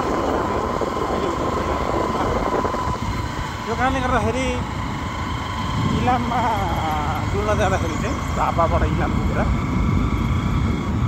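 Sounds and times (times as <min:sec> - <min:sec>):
motorcycle engine rumble: 0:00.0 - 0:11.0
thin steady whine: 0:00.0 - 0:11.0
wind rushing over microphone: 0:00.0 - 0:11.0.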